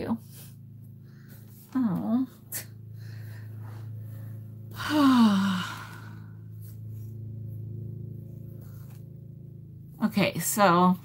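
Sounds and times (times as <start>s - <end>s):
low hum: 0.0s - 11.0s
woman sighing: 4.7s - 6.4s.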